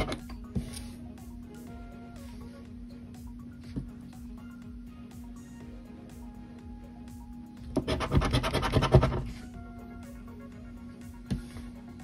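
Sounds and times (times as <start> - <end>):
coin scraping scratch card: 7.8 - 9.5.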